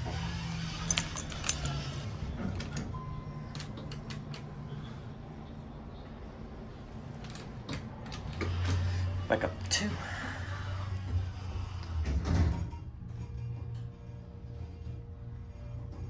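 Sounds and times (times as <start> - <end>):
elevator electrical buzz: 0.0 - 16.0.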